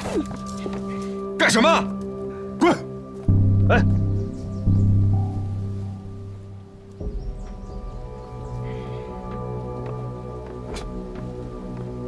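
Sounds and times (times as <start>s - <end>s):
dramatic low held chords: 1.2s - 12.0s.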